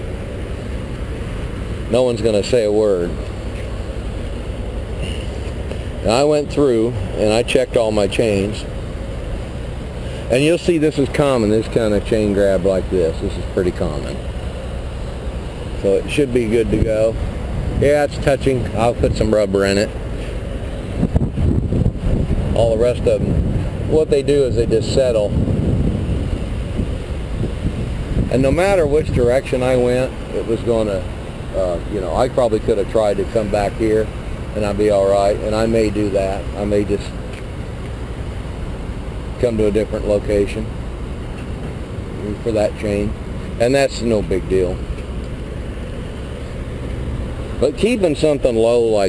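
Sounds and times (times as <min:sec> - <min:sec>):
trucks idling low rumble: 0:00.0 - 0:49.0
wind buffeting microphone: 0:20.1 - 0:30.3.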